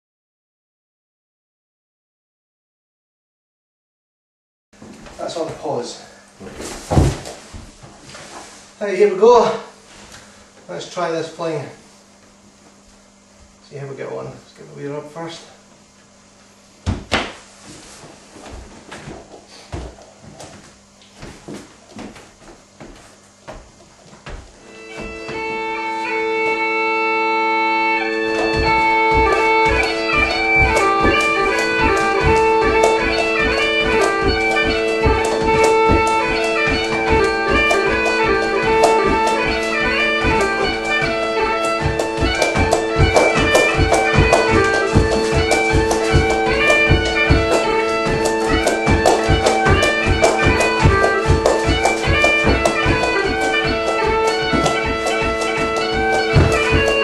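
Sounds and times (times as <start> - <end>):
dull thump: 6.8 - 7.7, 28.1 - 57.0
bagpipe dance music: 24.6 - 57.0
drum strokes: 27.9 - 57.0.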